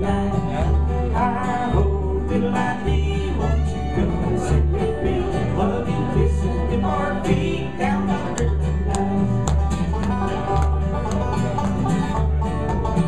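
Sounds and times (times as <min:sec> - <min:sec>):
acoustic guitar: 0:00.0 - 0:13.0
banjo: 0:00.0 - 0:13.0
fiddle: 0:00.0 - 0:13.0
upright bass: 0:00.0 - 0:13.0.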